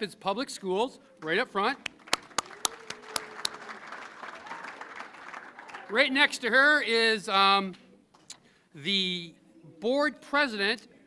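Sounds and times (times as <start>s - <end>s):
audience applauding: 1.8s - 6.2s.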